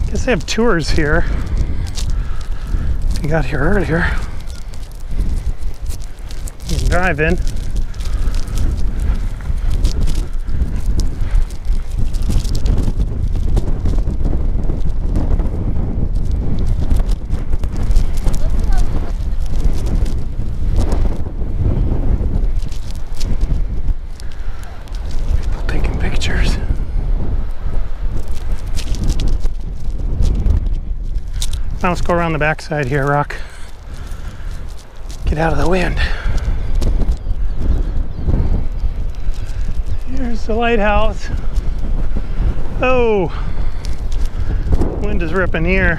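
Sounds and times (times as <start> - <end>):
wind buffeting microphone: 0.0 - 45.9.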